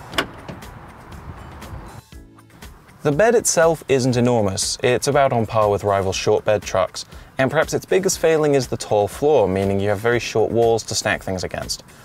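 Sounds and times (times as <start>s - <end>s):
tailgate latch click: 0.0s - 0.9s.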